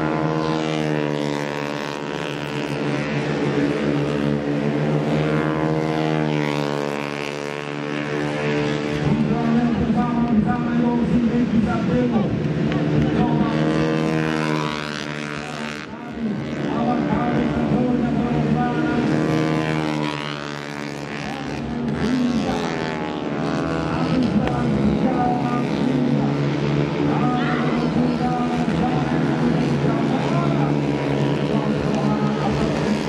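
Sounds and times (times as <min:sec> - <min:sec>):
racing motorcycle engines revving: 0:00.0 - 0:33.0.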